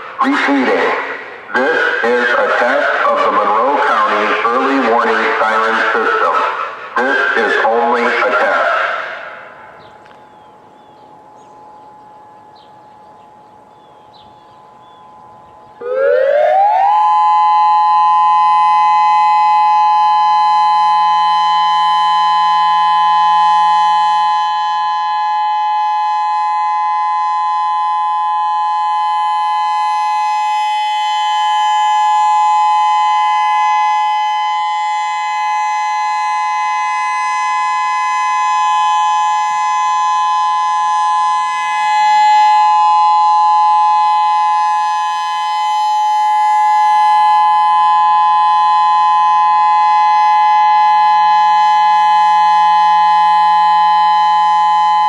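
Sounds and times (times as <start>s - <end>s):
electronic siren two-note tone: 10.8s - 55.0s.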